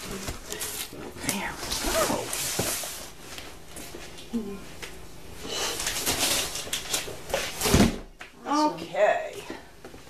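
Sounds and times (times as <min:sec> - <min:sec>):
box thud on hard floor: 0:07.5 - 0:08.1.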